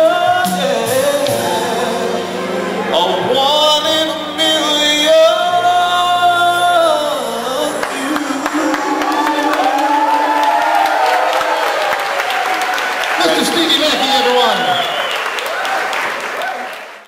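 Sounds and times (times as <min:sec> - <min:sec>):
man singing through a pa: 0:00.0 - 0:10.5.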